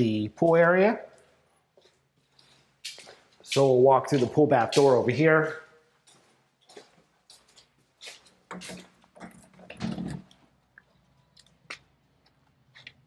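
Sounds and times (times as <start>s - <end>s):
footsteps on hard floor: 6.0s - 9.0s.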